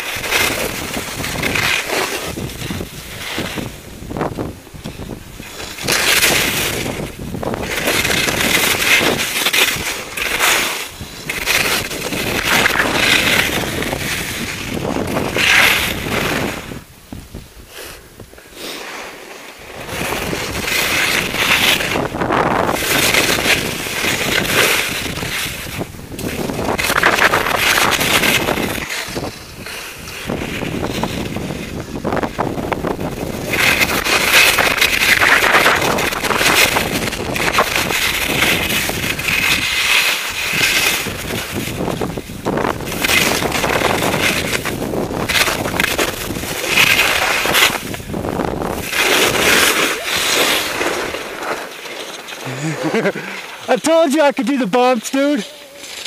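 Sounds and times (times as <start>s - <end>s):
wind buffeting microphone: 0.0s - 10.2s, 10.9s - 18.4s, 19.6s - 51.3s
skis scraping over snow: 0.0s - 56.0s.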